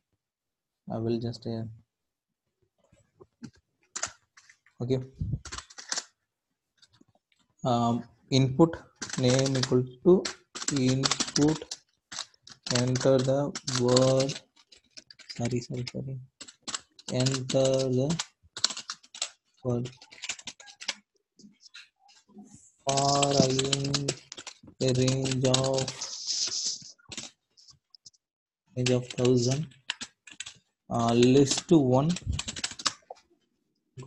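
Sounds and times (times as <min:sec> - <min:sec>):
keyboard keystrokes: 0:09.0 - 0:21.0, 0:22.9 - 0:26.0, 0:28.9 - 0:33.1.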